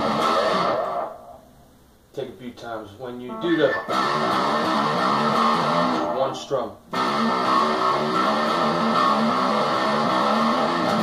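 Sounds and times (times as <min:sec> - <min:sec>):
electric guitar riff: 0:00.0 - 0:01.4, 0:03.3 - 0:06.3, 0:06.9 - 0:11.0.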